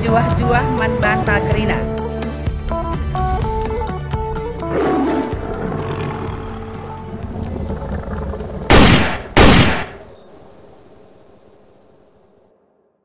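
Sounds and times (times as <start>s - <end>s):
background music: 0.0s - 10.0s
rumble: 5.4s - 13.0s
loud sudden blasts: 8.7s - 10.0s.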